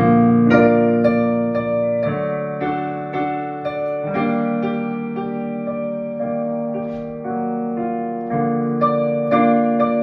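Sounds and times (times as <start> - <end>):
digital piano sustained chords: 0.0 - 10.0.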